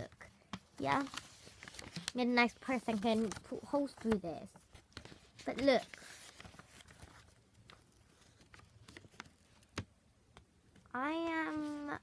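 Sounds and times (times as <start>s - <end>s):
paper ticks: 0.8s - 9.8s.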